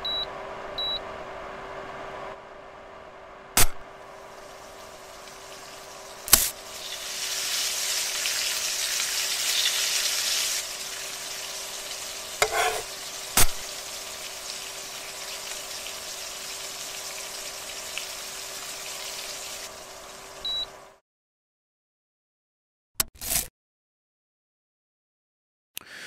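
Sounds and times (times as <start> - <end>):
food sizzling in a frying pan: 3.9 - 21.0
sharp knock in pan: 12.4 - 13.7.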